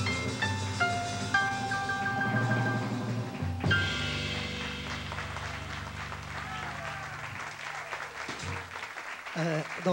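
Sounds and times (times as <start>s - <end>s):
audience applauding: 4.1s - 9.9s.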